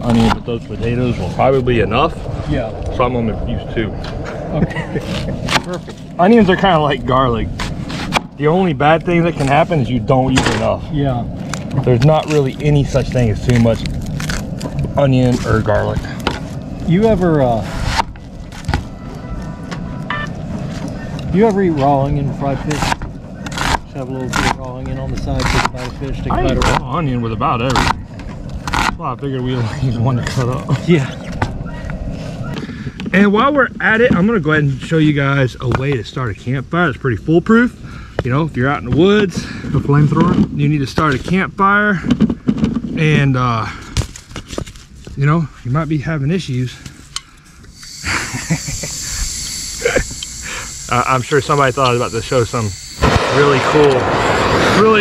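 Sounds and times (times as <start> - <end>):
gas hissing: 47.7 - 55.0.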